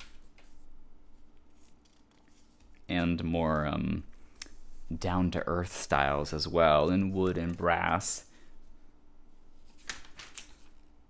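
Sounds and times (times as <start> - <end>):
rustling catalog pages: 1.3 - 3.7, 9.6 - 10.9
man speaking: 2.9 - 4.1, 4.9 - 8.3.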